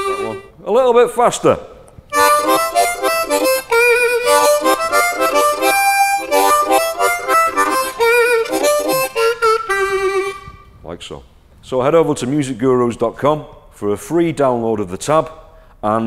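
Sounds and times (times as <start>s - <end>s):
blues harmonica riff: 0.0s - 0.6s, 2.1s - 10.7s.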